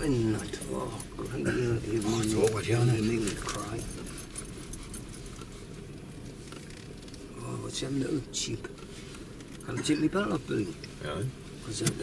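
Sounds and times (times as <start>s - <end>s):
car rumbling inside cabin: 0.0s - 12.0s.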